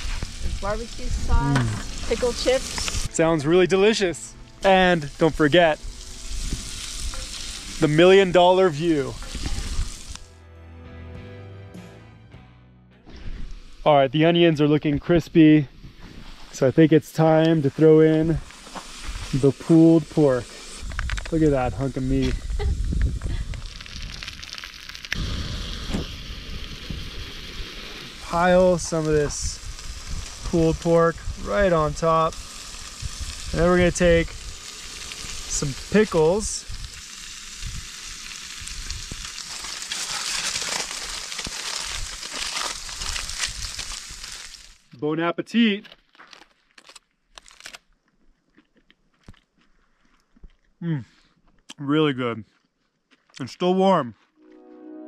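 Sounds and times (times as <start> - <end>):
aluminium foil crinkling: 0.0 - 3.2, 18.4 - 25.2, 27.8 - 44.9, 45.8 - 48.0
meat sizzling in skillet: 0.0 - 10.3, 15.7 - 44.9.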